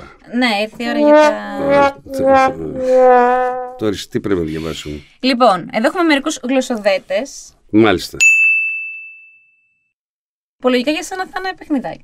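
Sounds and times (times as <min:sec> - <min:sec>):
bright bell-like ding: 0:08.2 - 0:09.7.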